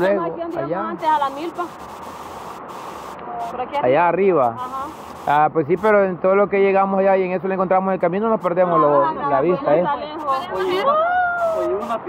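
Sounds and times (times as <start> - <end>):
river water flowing over rocks: 0.0 - 12.0
woman speaking: 0.2 - 1.8, 3.3 - 3.8, 4.6 - 5.0, 8.8 - 12.0.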